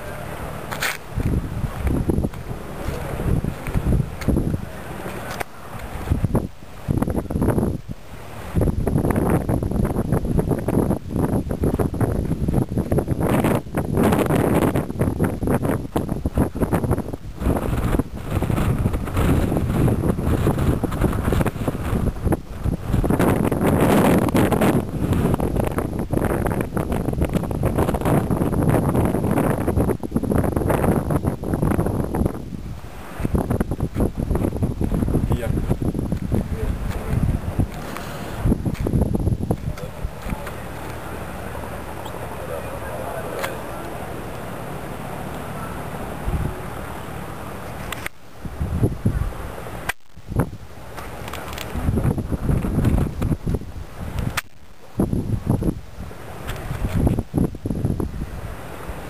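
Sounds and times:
wind blowing across microphone: 0.0s - 59.0s.

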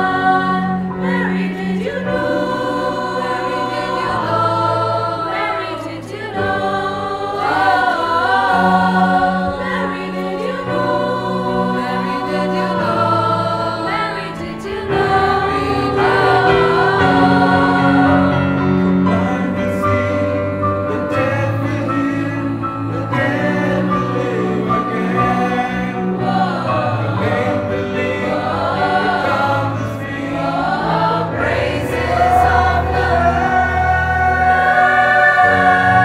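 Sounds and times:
church choir singing in harmony: 0.0s - 36.0s.

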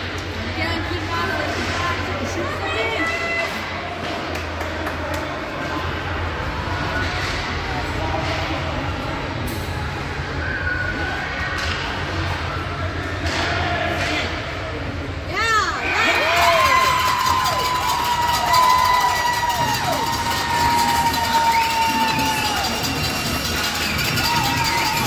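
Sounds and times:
players shouting: 15.5s - 25.0s.

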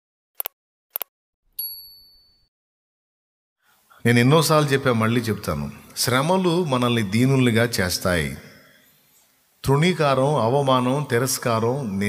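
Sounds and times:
bright bell ding: 1.6s - 2.5s.

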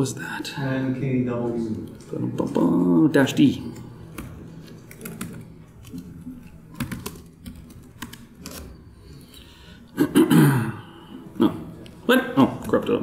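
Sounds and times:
typing on a laptop keyboard: 3.7s - 9.2s.

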